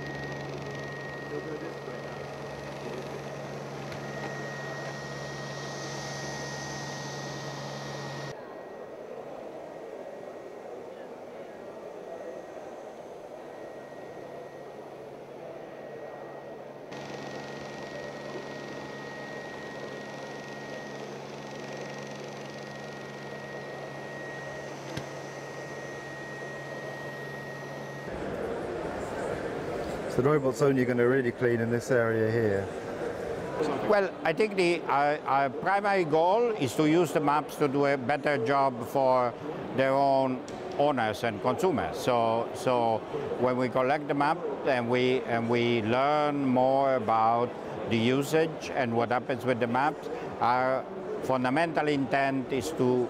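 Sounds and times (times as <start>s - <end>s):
robot vacuum motor hum: 0.0s - 8.4s, 11.6s - 28.5s
murmur of voices: 7.8s - 53.0s.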